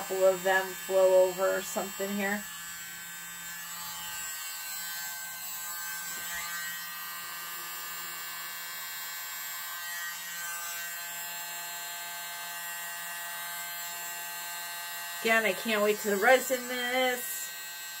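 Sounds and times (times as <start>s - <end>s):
small electric air blower humming: 0.0s - 18.0s.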